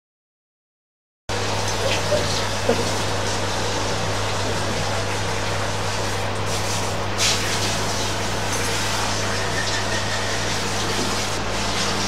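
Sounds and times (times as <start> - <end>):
shower hose spraying water: 1.4 - 12.0.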